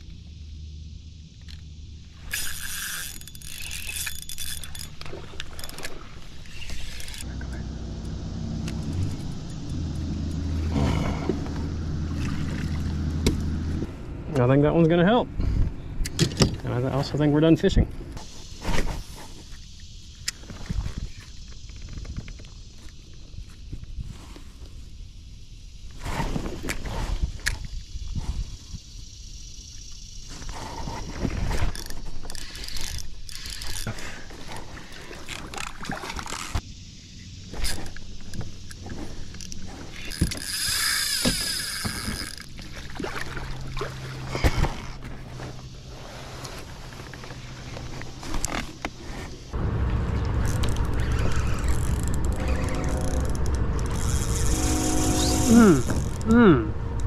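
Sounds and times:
fishing reel clicking: 2.2 - 7.3, 31.5 - 34.0, 37.6 - 42.6, 50.4 - 56.4
fishing reel rasping: 2.2 - 7.4, 31.4 - 36.6, 37.5 - 42.8, 50.4 - 56.5
low rumble: 7.2 - 16.1, 49.5 - 57.0.

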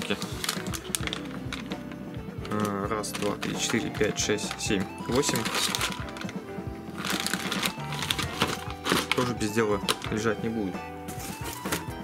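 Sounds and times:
plastic bag crinkling: 0.0 - 10.4
background music: 0.0 - 12.0.

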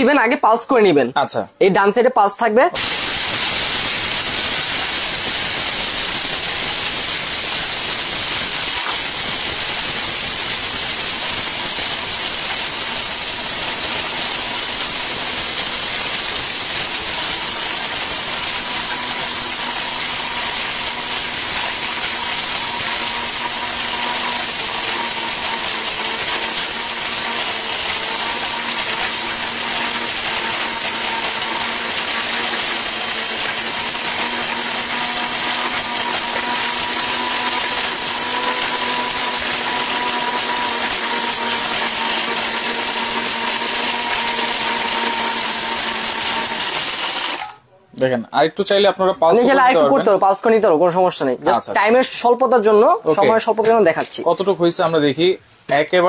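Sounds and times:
blender motor whining: 2.8 - 47.7, 49.2 - 50.1.

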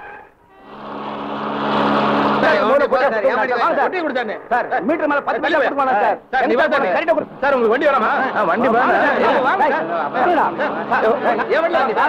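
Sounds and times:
vehicle engine droning: 0.4 - 5.4, 6.2 - 12.0.

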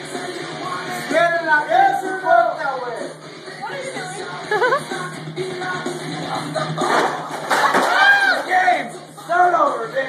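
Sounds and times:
plastic cups clattering on tile floor: 6.8 - 8.2
table tipping over: 6.8 - 8.2
people yelling: 7.7 - 8.8.

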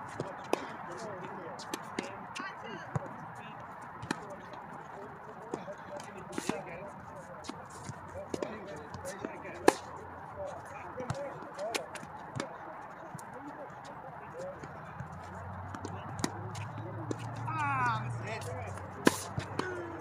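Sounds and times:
tennis balls bouncing on court: 0.0 - 20.0
tennis balls hit by rackets: 0.0 - 20.0.

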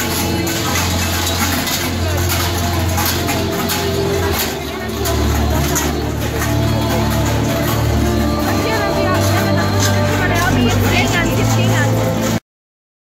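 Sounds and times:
crowd chatter: 0.0 - 12.4
large bells clanging: 0.0 - 12.4
music with deep bass: 0.0 - 12.4.

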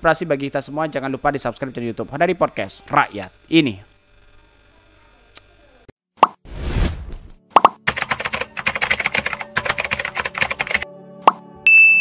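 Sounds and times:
whoosh: 6.5 - 7.3.

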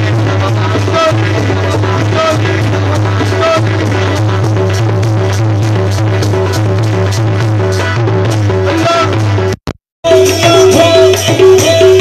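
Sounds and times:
hand drums beating: 0.0 - 12.0.

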